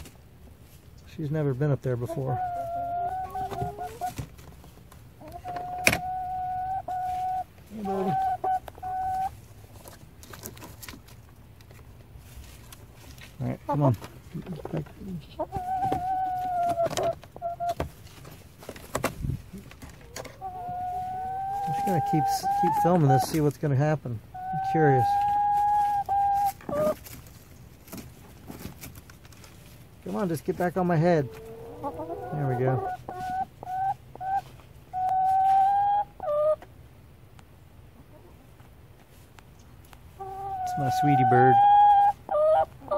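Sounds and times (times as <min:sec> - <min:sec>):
chicken long steady call: 0:02.1 - 0:04.1, 0:05.2 - 0:09.3, 0:20.3 - 0:23.3, 0:31.2 - 0:36.6, 0:40.2 - 0:42.9.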